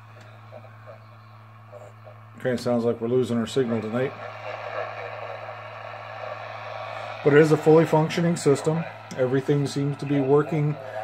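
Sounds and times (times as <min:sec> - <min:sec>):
low hum: 0:00.0 - 0:11.0
radio static hiss: 0:00.0 - 0:11.0
weak radio station: 0:00.0 - 0:11.0.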